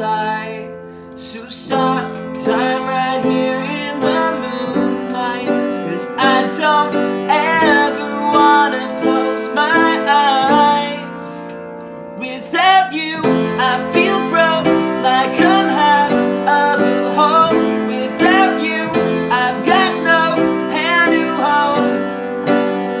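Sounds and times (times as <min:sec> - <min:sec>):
upright piano playing chords: 0:00.0 - 0:23.0.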